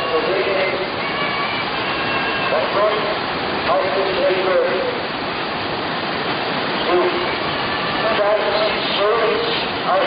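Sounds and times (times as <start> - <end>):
whitewater rapids roaring: 0.0 - 10.0.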